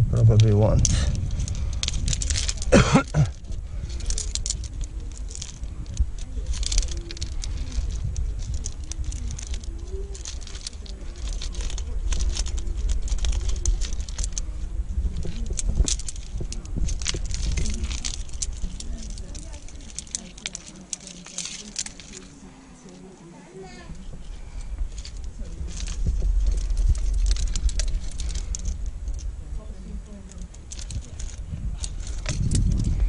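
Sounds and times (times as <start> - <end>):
steady low rumble: 0.0 - 33.0
metal gear clatter: 0.3 - 22.4, 24.5 - 33.0
climbing gear jingling and clicking: 0.3 - 23.1, 23.9 - 33.0.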